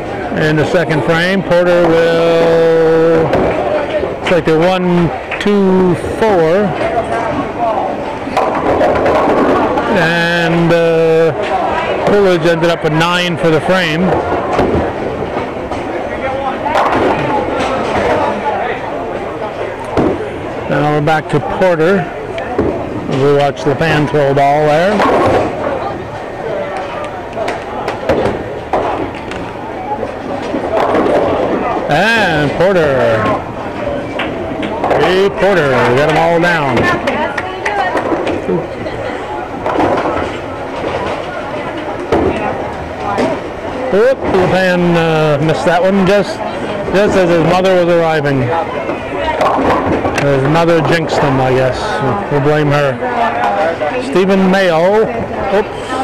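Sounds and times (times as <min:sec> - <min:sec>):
bowling ball rolling: 0:00.0 - 0:56.0
people chattering: 0:00.0 - 0:56.0
rumble of distant bowling balls: 0:00.0 - 0:56.0
crash of bowling pins: 0:08.3 - 0:09.9, 0:16.7 - 0:18.5, 0:30.2 - 0:31.9.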